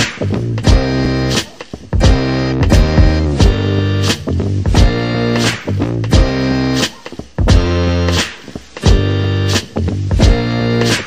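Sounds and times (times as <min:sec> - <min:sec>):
guitar music with bass and beat: 0:00.0 - 0:11.0.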